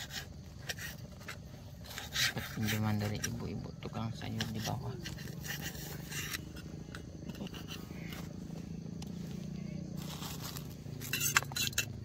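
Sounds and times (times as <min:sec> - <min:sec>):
rustling and scraping: 0:00.0 - 0:12.0.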